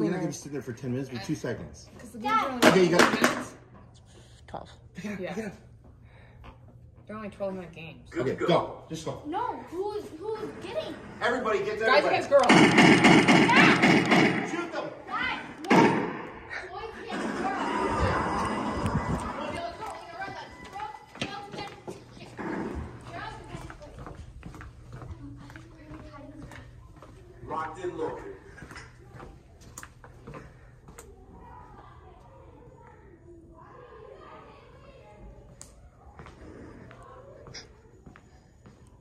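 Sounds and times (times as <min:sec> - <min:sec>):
players' voices: 0:08.1 - 0:23.8
loud thud: 0:12.5 - 0:14.6, 0:15.7 - 0:16.4.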